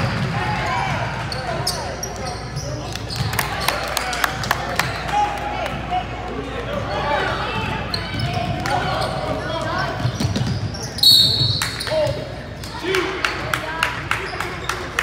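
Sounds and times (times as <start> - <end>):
referee whistle blast: 11.0 - 11.8.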